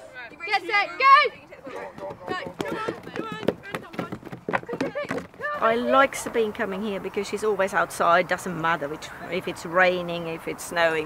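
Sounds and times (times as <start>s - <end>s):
children shouting and cheering: 0.4s - 3.7s, 4.7s - 6.0s
running footsteps on dry ground: 1.9s - 5.6s.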